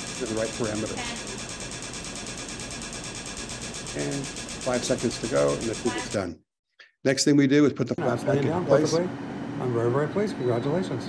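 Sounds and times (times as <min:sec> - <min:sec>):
laser clicking pulses: 0:00.0 - 0:06.2.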